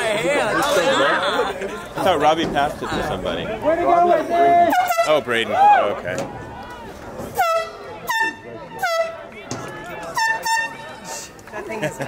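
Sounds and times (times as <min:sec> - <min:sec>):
air horn short blasts: 0:04.7 - 0:05.2, 0:07.3 - 0:09.3, 0:10.1 - 0:10.9.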